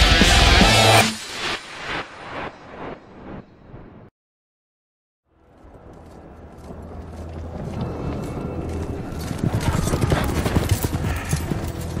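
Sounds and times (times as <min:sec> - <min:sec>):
horse hoofbeats: 0:05.6 - 0:12.0.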